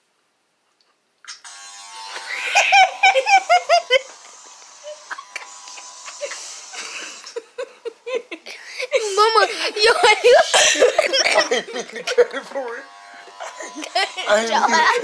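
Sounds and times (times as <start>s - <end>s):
electric hair clippers buzzing: 1.3s - 15.0s
loud high-pitched laughter: 2.1s - 12.6s, 13.2s - 15.0s.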